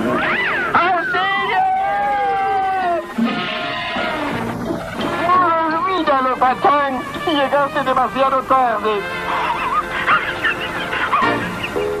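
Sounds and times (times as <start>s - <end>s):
music: 0.0s - 12.0s
cartoon dog wheezing laugh: 9.3s - 11.9s.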